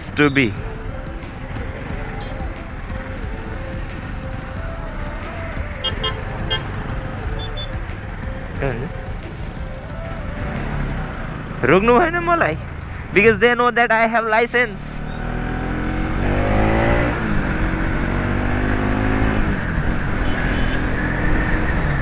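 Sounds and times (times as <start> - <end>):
motorcycle engine and road rumble: 0.0 - 22.0.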